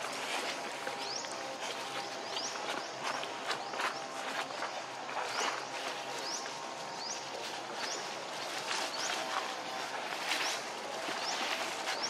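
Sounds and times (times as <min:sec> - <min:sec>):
dry leaves crackling and rustling: 0:00.0 - 0:12.0.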